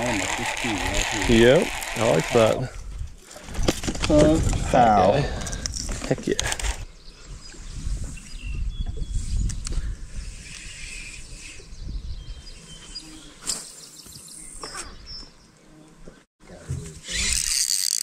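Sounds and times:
wind rumble on microphone: 0:02.6 - 0:12.7
fishing reel clicks: 0:17.1 - 0:18.0.

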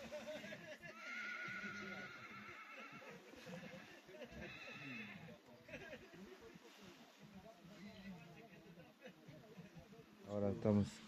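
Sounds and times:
faint murmuring voices: 0:00.0 - 0:11.0
distant horse whinnying: 0:01.0 - 0:03.1.

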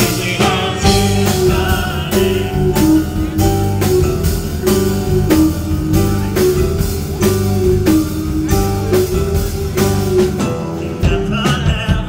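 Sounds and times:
digital piano notes: 0:00.0 - 0:11.5
bass guitar: 0:00.0 - 0:12.0
drum kit steady beat: 0:00.0 - 0:12.0.

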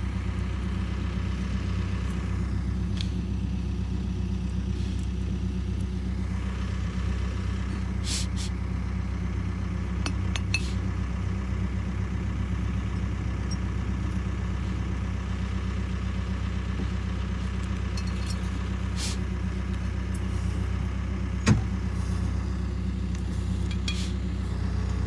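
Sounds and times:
engine idling: 0:00.0 - 0:25.0.

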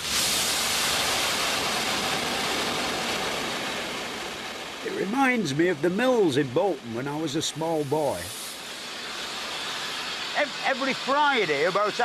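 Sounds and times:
steam hissing from valve: 0:00.0 - 0:02.0, 0:04.8 - 0:12.0.

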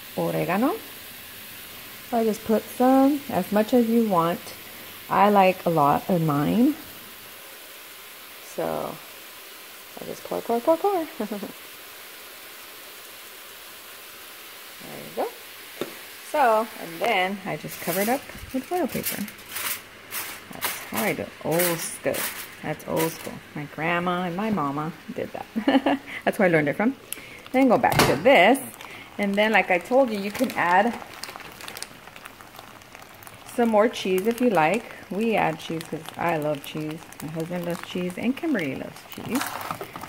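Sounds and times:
food sizzling in a pan: 0:00.0 - 0:40.0
small crackles: 0:14.7 - 0:23.5, 0:27.0 - 0:40.0.

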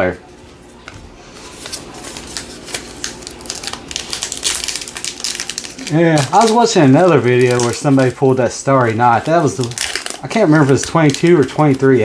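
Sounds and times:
plastic wrapper crinkling: 0:01.4 - 0:12.0.

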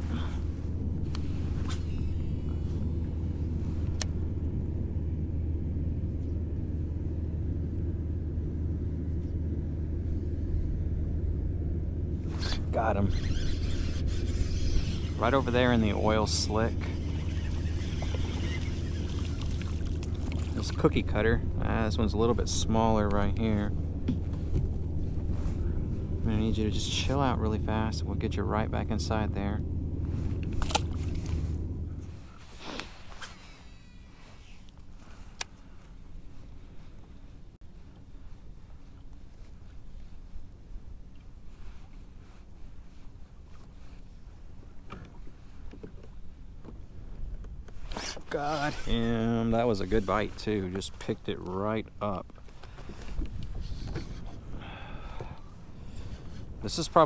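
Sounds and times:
low rumble of handling: 0:00.0 - 0:57.0
person exhaling breathily: 0:54.5 - 0:56.5.

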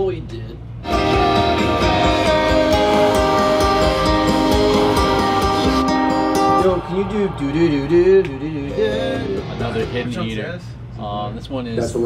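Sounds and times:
strummed guitar chords: 0:00.8 - 0:10.3.

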